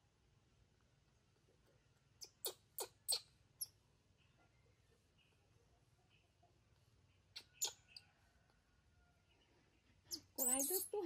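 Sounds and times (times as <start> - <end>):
baby monkey squeaking: 2.2 - 3.7, 7.4 - 7.8, 10.1 - 11.0.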